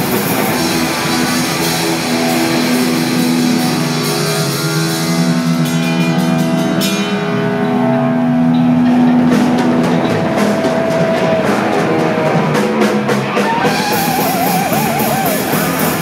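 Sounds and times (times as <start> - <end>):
thrash metal band playing: 0.0 - 16.0.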